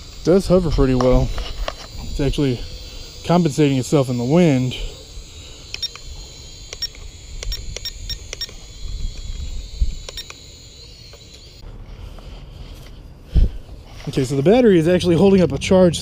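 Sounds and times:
toy drone propellers whining: 0.0 - 11.6
sharp clicks: 5.6 - 11.6.

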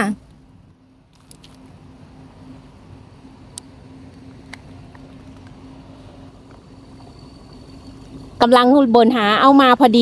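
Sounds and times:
distant diesel locomotive engine: 0.0 - 10.0.

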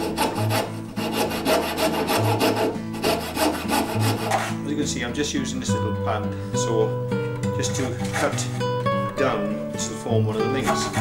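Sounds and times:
saw cutting through wood: 0.0 - 4.6, 7.7 - 8.6, 10.6 - 11.0.

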